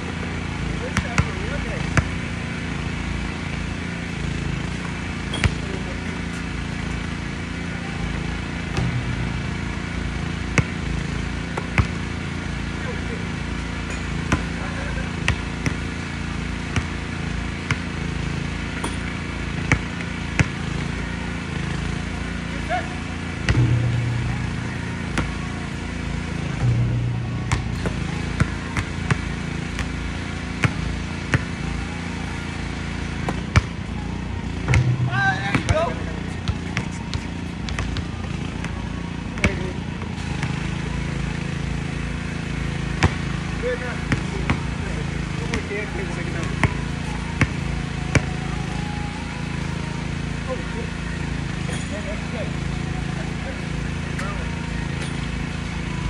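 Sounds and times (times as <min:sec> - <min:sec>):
basketballs bouncing on hard court: 0:00.1 - 0:02.5, 0:04.4 - 0:07.0, 0:08.6 - 0:12.4, 0:13.6 - 0:20.8, 0:23.4 - 0:31.6, 0:33.2 - 0:33.8, 0:34.6 - 0:38.8, 0:39.4 - 0:40.6, 0:42.9 - 0:43.5, 0:44.1 - 0:48.3.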